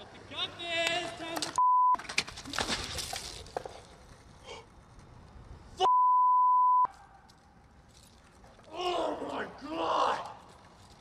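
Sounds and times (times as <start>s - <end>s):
outdoor noise: 0.0s - 11.0s
censor bleeps: 1.6s - 2.0s, 5.8s - 6.9s.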